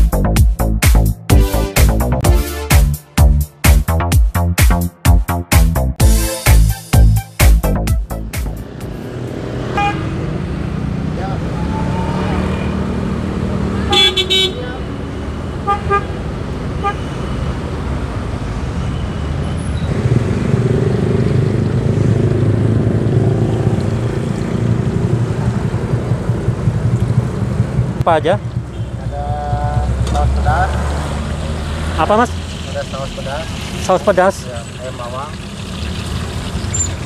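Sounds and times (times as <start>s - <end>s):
road traffic engine rumble: 6.6s - 37.0s
loud horn toot: 9.8s - 10.2s, 13.8s - 14.8s, 15.6s - 16.2s, 16.8s - 17.2s, 28.7s - 29.2s.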